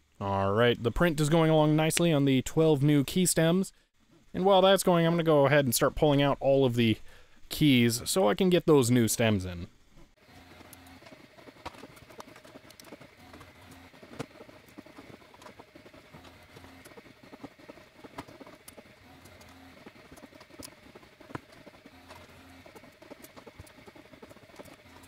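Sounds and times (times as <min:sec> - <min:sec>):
keycaps clicking off keyboard: 0:10.4 - 0:25.0.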